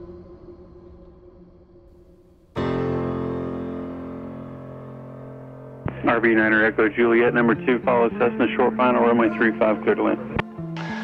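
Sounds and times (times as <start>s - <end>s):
piano chord ringing: 2.6s - 11.0s.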